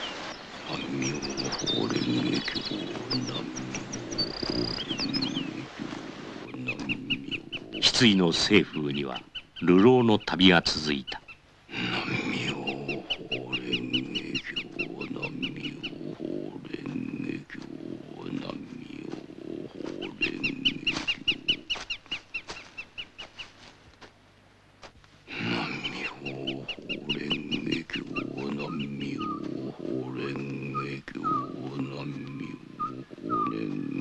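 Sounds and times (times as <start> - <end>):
low voice chanting: 0.6 - 21.8, 25.3 - 34.0.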